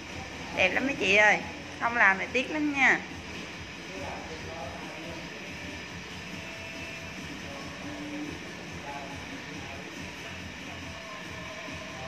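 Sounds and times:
room background noise: 0:00.0 - 0:12.0.

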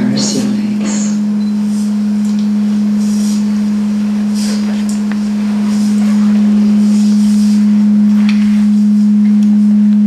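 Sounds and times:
steady low pure tone: 0:00.0 - 0:10.0.

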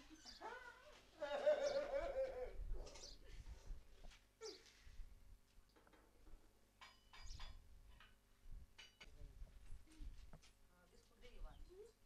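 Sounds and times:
man laughing: 0:01.2 - 0:02.6.

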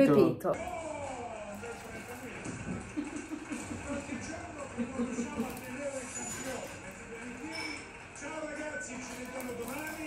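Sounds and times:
faint indistinct voices: 0:00.6 - 0:10.0
room noise: 0:00.6 - 0:10.0.

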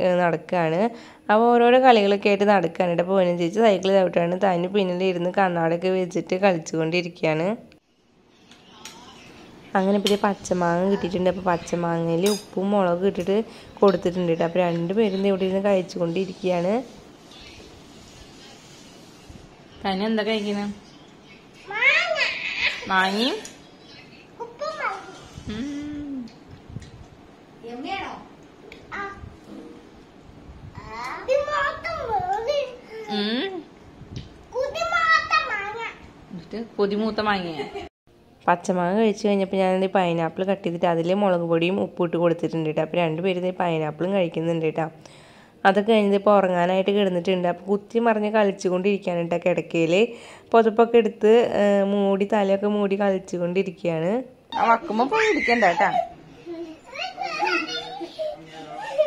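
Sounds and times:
young children talking: 0:54.6 - 0:59.0.

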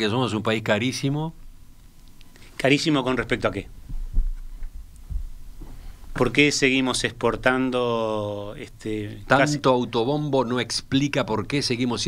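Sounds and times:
faint low hum: 0:00.0 - 0:12.0
low thumps: 0:03.8 - 0:06.4.

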